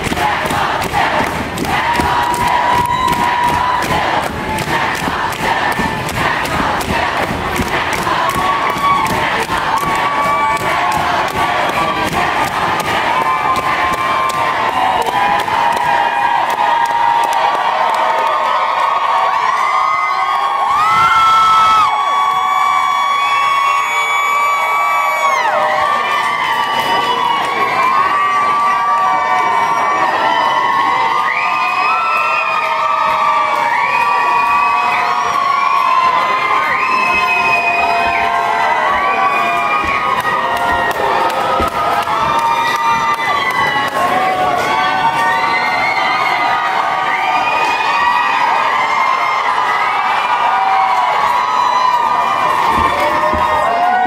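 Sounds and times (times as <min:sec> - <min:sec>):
crowd cheering and screaming: 0:00.0 - 0:54.0.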